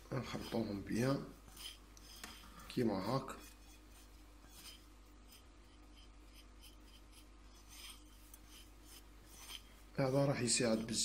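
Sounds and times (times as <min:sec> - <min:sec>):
fingers rubbing powder on plate: 0:00.1 - 0:11.0.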